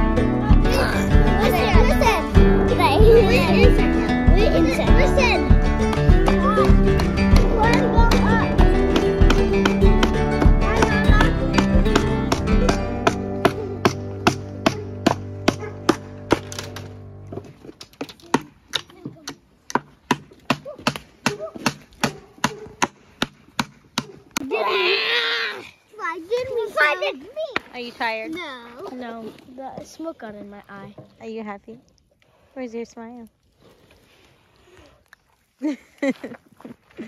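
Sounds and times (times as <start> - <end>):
background music: 0.0 - 17.4.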